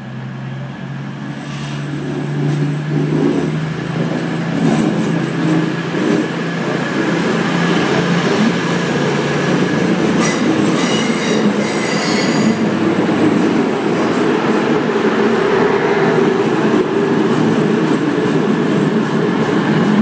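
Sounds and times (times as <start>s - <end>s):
diesel train engines rumbling: 0.0s - 20.0s
train wheel squeal: 10.1s - 12.8s.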